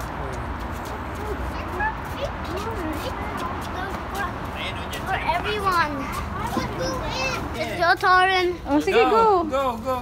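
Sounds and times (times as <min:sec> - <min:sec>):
low outdoor background noise: 0:00.0 - 0:10.0
young children chattering: 0:01.0 - 0:09.6.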